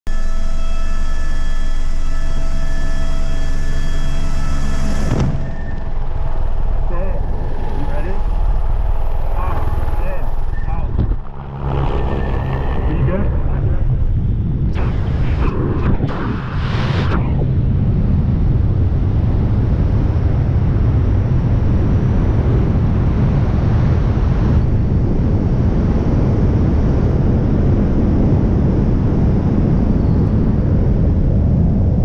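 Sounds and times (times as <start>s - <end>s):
helicopter turbine and rotor: 0.1s - 32.0s
high turbine whine: 0.1s - 32.0s
rushing wind and rotor wash: 4.5s - 32.0s.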